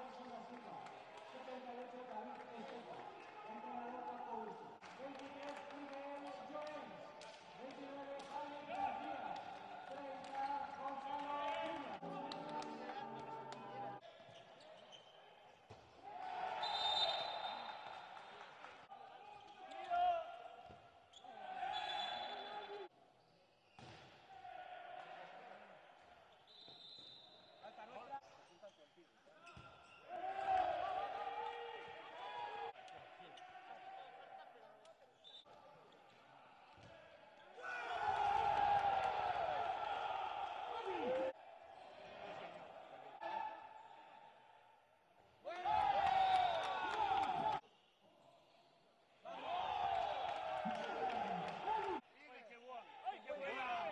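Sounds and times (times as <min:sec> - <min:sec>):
players shouting: 0:37.6 - 0:43.9, 0:49.2 - 0:52.0.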